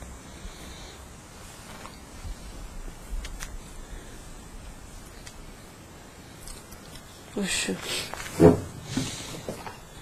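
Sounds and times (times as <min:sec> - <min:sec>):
faint breaths: 0:00.0 - 0:10.0.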